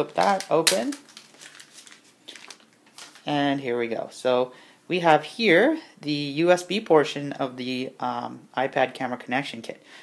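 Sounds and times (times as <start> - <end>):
packaging sleeve rustling: 0.0 - 3.8.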